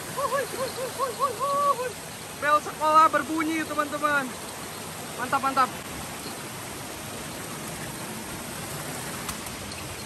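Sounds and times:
small stream rushing: 0:00.0 - 0:10.0.

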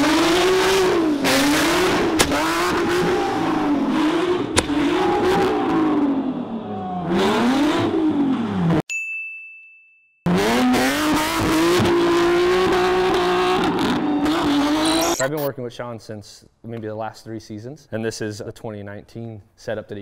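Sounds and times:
car engine revving: 0:00.0 - 0:08.8, 0:10.3 - 0:15.5
high steady beep: 0:14.8 - 0:15.5.

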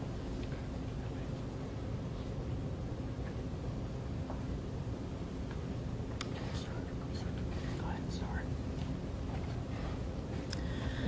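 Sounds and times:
low room hum: 0:00.0 - 0:11.0
faint whispering: 0:06.3 - 0:08.5.

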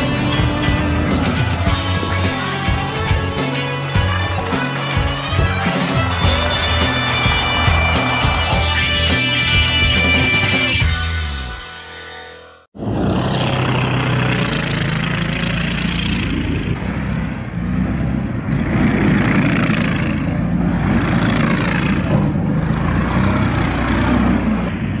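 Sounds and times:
atv engine running: 0:00.0 - 0:11.0, 0:12.8 - 0:25.0.

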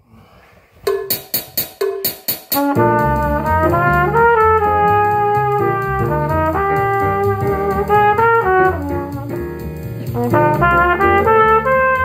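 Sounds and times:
fast count-in clicks: 0:00.9 - 0:12.0
trumpet playing: 0:02.5 - 0:12.0.

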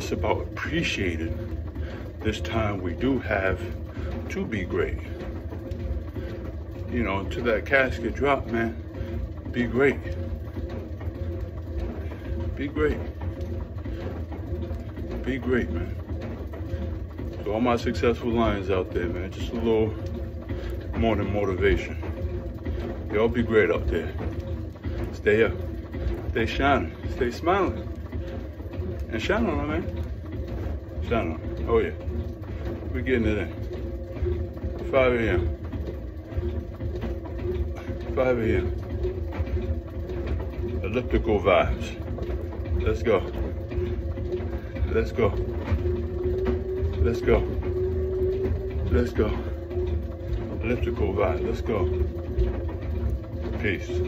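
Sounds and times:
elliptical trainer rumble: 0:00.0 - 0:54.0.

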